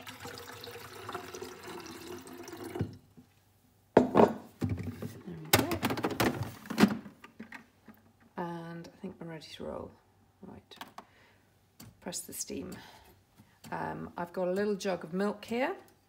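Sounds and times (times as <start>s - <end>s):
water pouring into plastic tank: 0.0s - 3.0s
plastic knocks and clatter: 4.0s - 8.0s.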